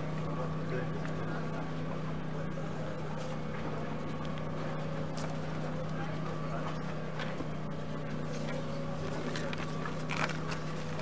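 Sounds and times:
low motor hum: 0.0s - 11.0s.

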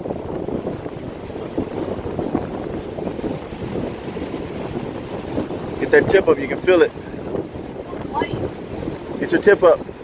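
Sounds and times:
surf washing on beach: 0.0s - 10.0s
wind buffeting microphone: 0.0s - 10.0s.

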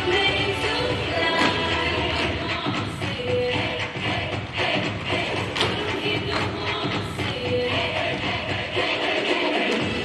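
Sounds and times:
recorded music playing loudly: 0.0s - 10.0s
tap shoes on wooden stage: 1.2s - 8.5s.

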